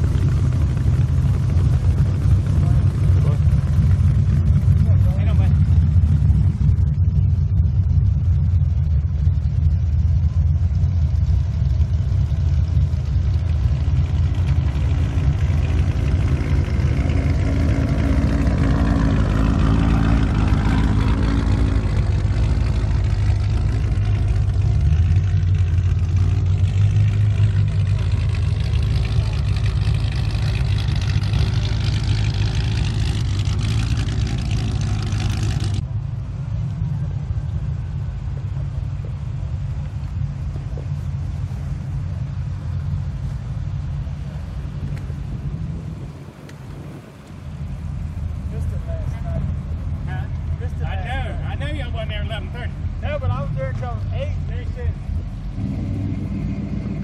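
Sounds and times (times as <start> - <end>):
car engines passing by: 0.0 - 57.0.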